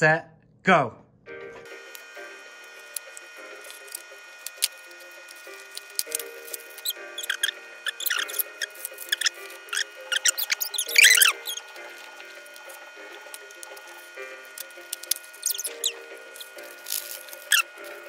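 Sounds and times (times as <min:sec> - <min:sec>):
background music: 0:01.2 - 0:18.0
cardboard boxes and plastic bags tearing: 0:03.6 - 0:18.0
short squeaky sounds: 0:06.0 - 0:11.9, 0:15.4 - 0:18.0.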